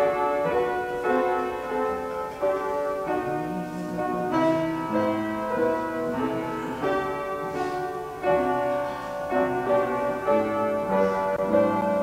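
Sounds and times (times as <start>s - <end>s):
slow piano music: 0.0s - 12.0s.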